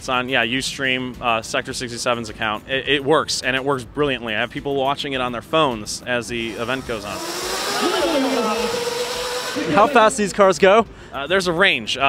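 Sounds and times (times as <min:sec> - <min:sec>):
electric motor whining: 0:06.4 - 0:10.2.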